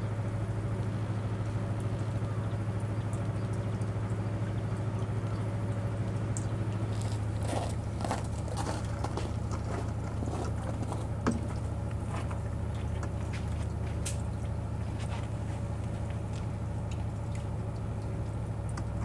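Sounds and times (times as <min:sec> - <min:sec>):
boat engine idling: 0:00.0 - 0:19.0
crackling and crunching clicks: 0:06.9 - 0:11.1.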